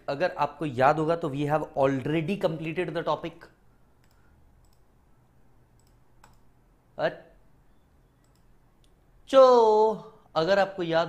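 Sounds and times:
low room hum: 0:00.0 - 0:11.0
faint clicks: 0:04.0 - 0:04.9, 0:05.7 - 0:06.5, 0:08.2 - 0:09.0.

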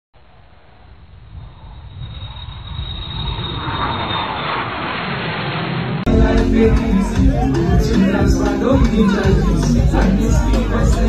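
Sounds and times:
rushing noise: 0:00.2 - 0:11.0.

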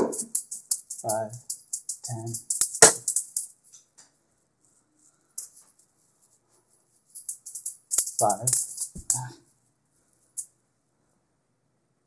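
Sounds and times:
metal juggling balls jingling: 0:00.0 - 0:03.8, 0:05.4 - 0:06.3, 0:07.0 - 0:09.4.

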